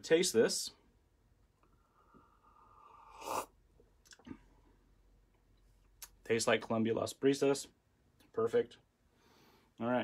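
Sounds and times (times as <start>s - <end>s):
person sipping and slurping coffee: 2.0s - 4.3s.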